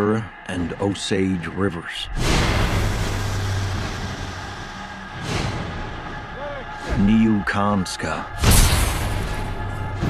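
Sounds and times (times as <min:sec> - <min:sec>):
low rumbling drone: 0:02.1 - 0:10.0.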